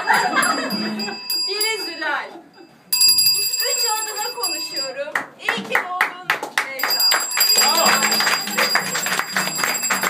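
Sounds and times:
laughter: 0.0 - 1.2
bell-like ringing: 0.0 - 5.0, 6.8 - 10.0
hand clapping: 5.1 - 10.0.

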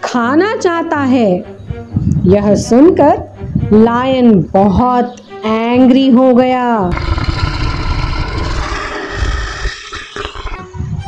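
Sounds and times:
lion roaring: 6.9 - 10.6.

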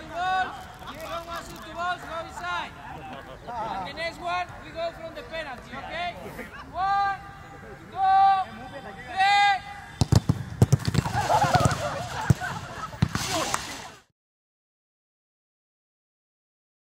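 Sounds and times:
players shouting: 0.0 - 14.0
man shouting calls: 3.6 - 10.0
footballs being kicked: 10.0 - 13.8.

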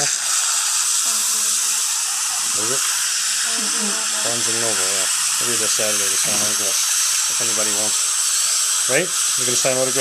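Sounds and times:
dental suction hissing: 0.0 - 10.0.

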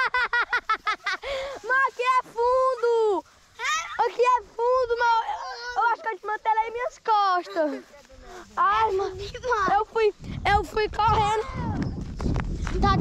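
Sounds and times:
children shouting and squealing: 1.0 - 12.0.

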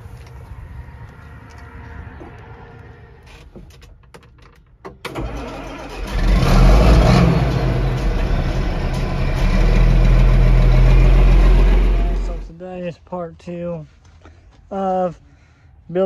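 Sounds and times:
tractor engine running: 5.0 - 12.5.

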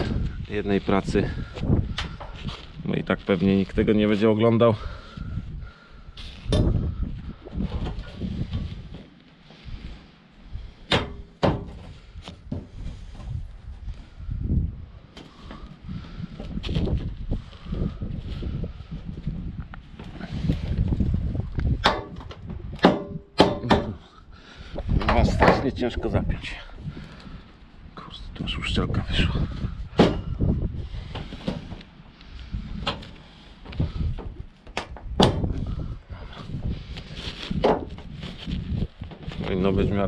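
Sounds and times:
gloves rustling on gutter: 0.0 - 40.0.

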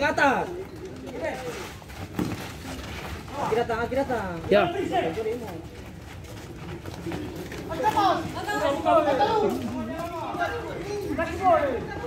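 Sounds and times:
players and spectators voices: 0.0 - 12.0.

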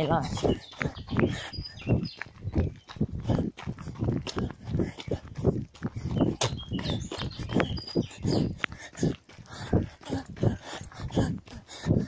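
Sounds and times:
runner panting heavily: 0.0 - 12.0.

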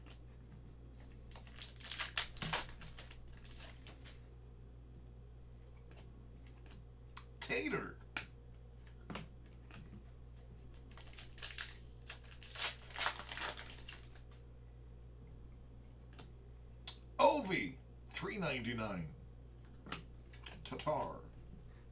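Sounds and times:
foil wrapper tearing and crinkling: 1.3 - 4.2, 10.8 - 14.3.

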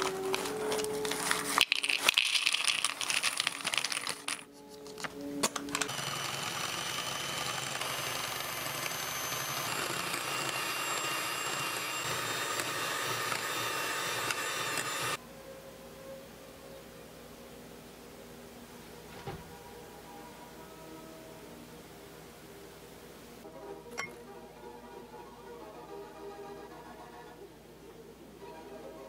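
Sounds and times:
crackers tumbling into wooden bowl: 0.0 - 5.8
foil packet crinkling: 0.0 - 6.2
electric hand mixer running: 5.7 - 15.2.

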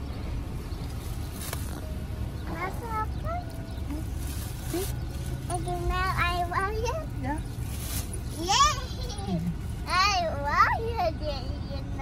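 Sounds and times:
low car rumble: 0.0 - 12.0.

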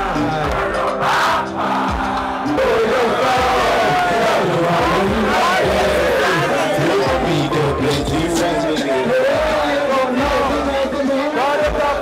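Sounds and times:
pulsing beat with heavy bass: 0.0 - 11.0, 11.6 - 12.0
crowd shouting along: 0.0 - 12.0
rap backing track through speakers: 0.0 - 12.0.

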